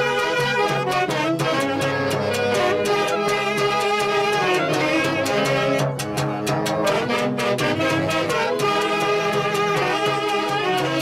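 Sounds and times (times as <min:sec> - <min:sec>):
clarinet: 0:00.0 - 0:11.0
saxophones: 0:00.0 - 0:11.0
violin: 0:00.0 - 0:11.0.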